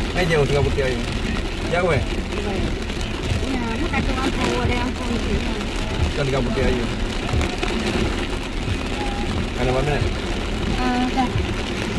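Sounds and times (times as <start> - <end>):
heavy rain on car roof: 0.0 - 11.9.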